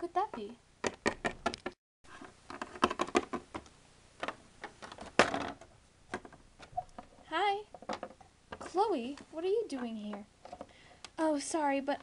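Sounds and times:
plastic figurines clicking and knocking: 0.2 - 1.8, 2.5 - 8.7.

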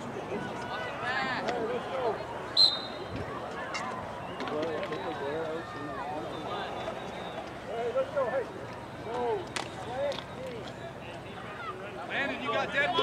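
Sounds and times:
referee whistle: 2.6 - 3.1.

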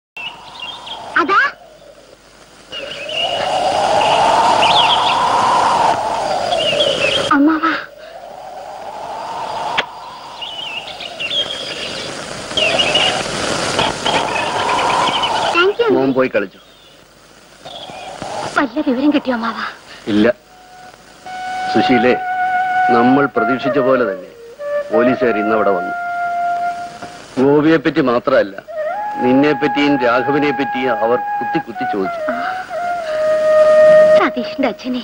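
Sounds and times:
whistling wind: 0.2 - 2.1, 2.7 - 16.2
birds chirping: 0.2 - 27.0.

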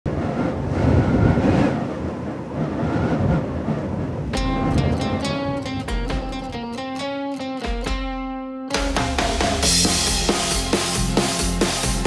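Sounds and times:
faint wavering whistle: 0.4 - 1.4.

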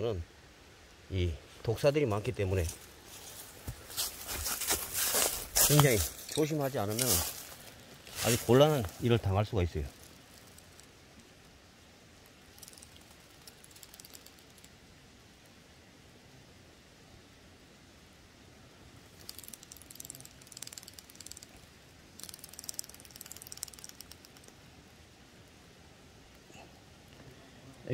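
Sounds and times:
dry leaves crackling: 2.6 - 11.4, 12.3 - 14.7, 19.1 - 24.4.

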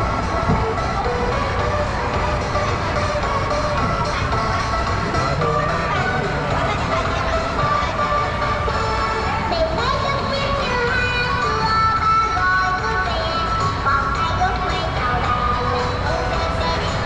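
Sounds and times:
low rumble of ride: 0.0 - 17.0
music from ride speaker: 0.0 - 17.0.

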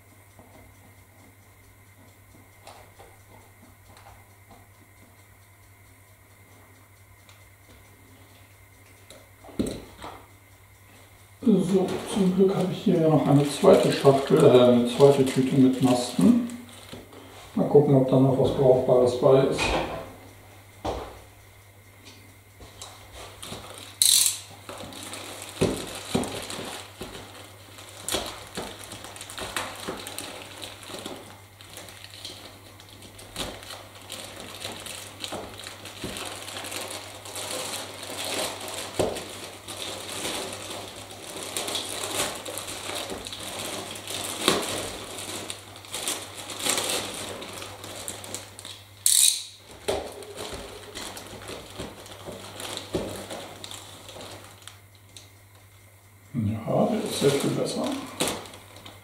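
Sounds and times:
steady low hum: 0.0 - 59.0
plastic bag crinkling: 11.5 - 17.0, 23.3 - 48.9, 49.6 - 55.2, 56.9 - 59.0.

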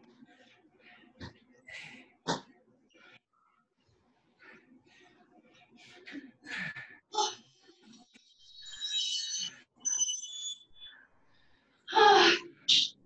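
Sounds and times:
person breathing hard: 4.4 - 7.1.

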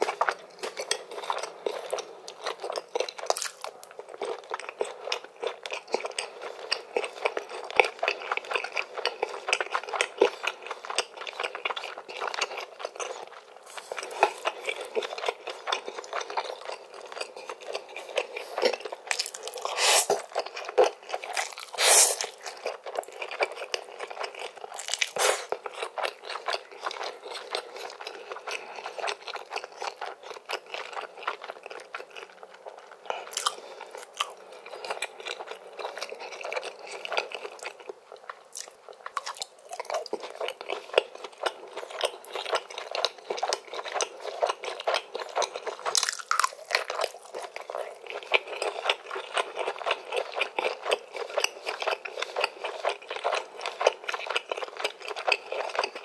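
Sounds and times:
wet chewing and mouth clicks: 0.0 - 56.0
noodles slurped: 19.6 - 20.3, 21.3 - 22.5.

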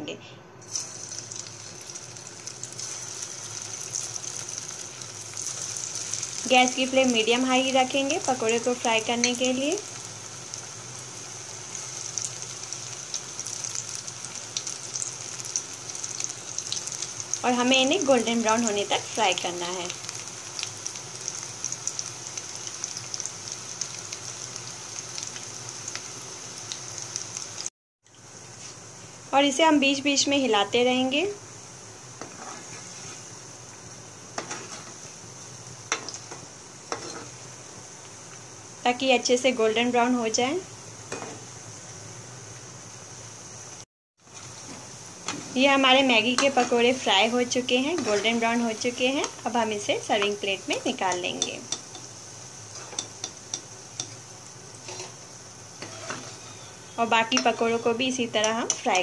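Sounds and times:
food deep-frying in hot oil: 0.6 - 59.0.

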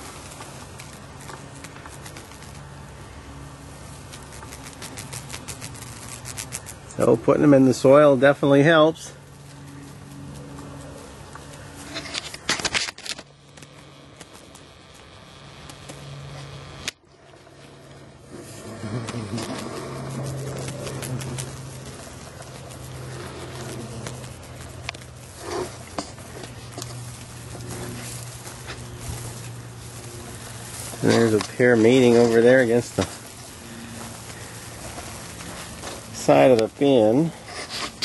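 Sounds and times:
flies buzzing: 0.0 - 38.0.

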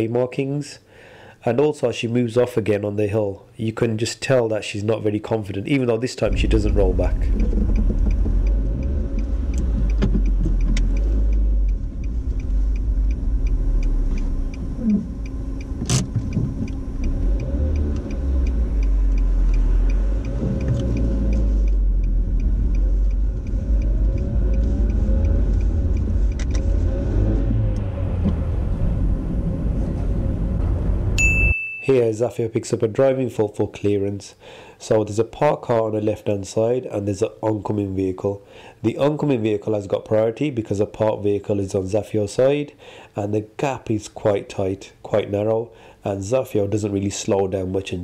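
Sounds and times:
faint regular ticking: 6.2 - 26.6
car engine and tyre rumble: 6.2 - 31.2.

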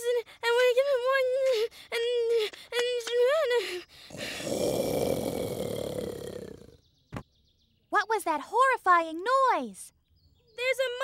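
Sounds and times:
cartoon growling roar: 4.1 - 6.8.

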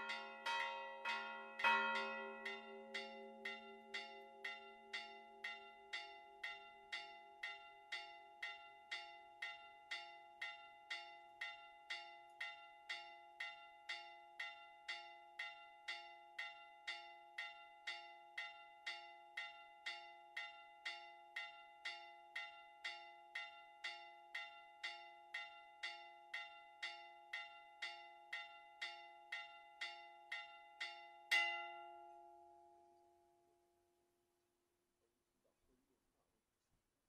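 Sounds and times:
church bells ringing rapidly: 0.0 - 7.9.

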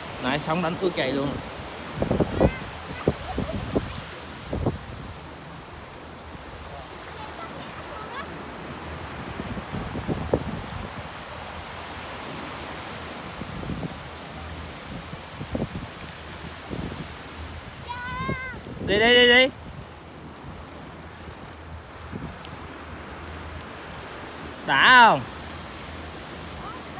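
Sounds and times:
small waves breaking on shore: 0.0 - 26.9
wind buffeting microphone: 0.0 - 26.9.

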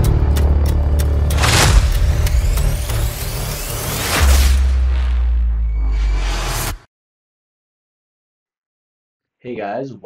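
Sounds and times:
sharp clicks: 0.0 - 4.0
deep bass drone: 0.0 - 6.8.

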